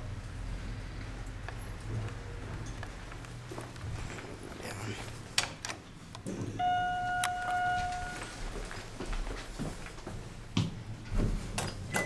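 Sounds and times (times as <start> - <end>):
elevator chime ding: 6.6 - 8.4.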